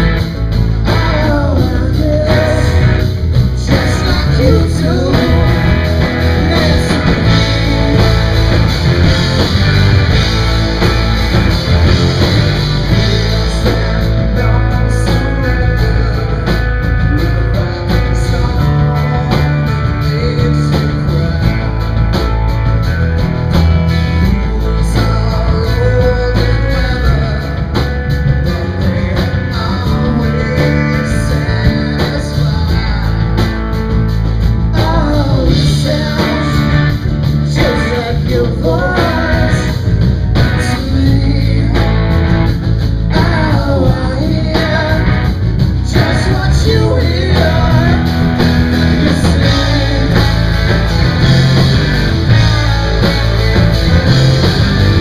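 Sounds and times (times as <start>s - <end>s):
lead singer singing: 0.0s - 22.2s, 23.9s - 55.0s
bass guitar: 0.0s - 55.0s
drums: 0.0s - 55.0s
electric and acoustic guitars: 0.0s - 55.0s.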